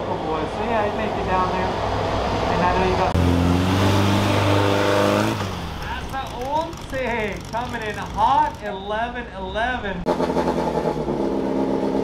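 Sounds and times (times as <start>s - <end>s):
race car engine running: 4.2s - 8.7s.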